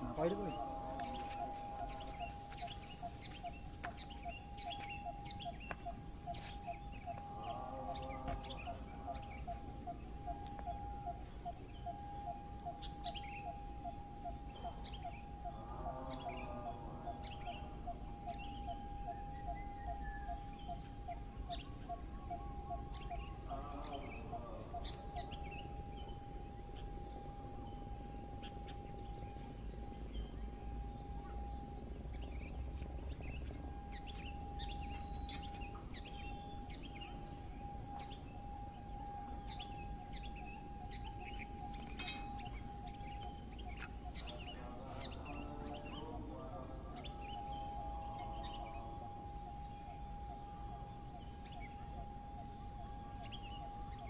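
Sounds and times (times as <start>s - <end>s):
birds chirping: 0.0s - 54.0s
steady high-pitched tone: 0.0s - 54.0s.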